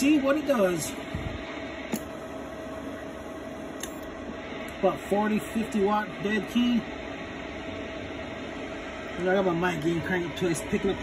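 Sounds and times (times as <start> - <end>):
cooling fan whirring: 0.0 - 11.0
faint hum: 0.0 - 11.0
sharp click: 3.8 - 4.1.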